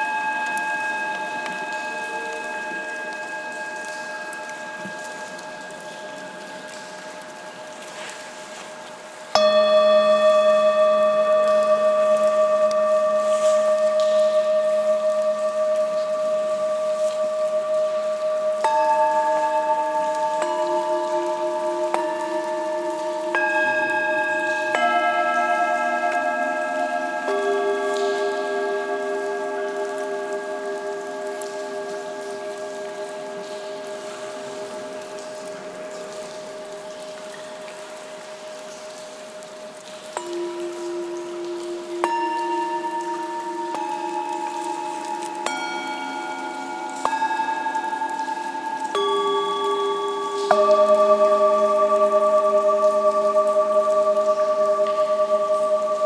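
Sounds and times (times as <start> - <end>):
singing bowls ringing: 0.0 - 8.2, 9.0 - 56.0.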